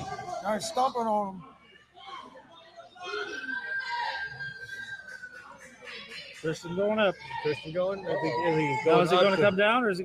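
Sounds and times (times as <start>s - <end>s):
faint hall noise: 0.0s - 10.0s.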